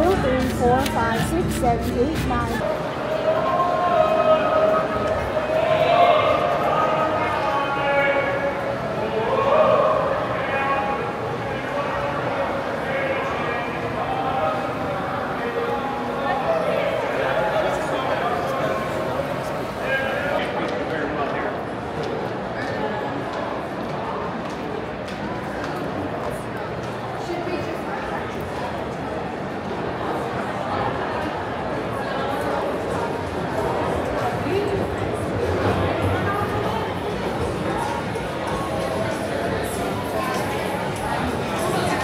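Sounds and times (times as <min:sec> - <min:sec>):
indistinct crowd chatter: 0:00.0 - 0:42.0.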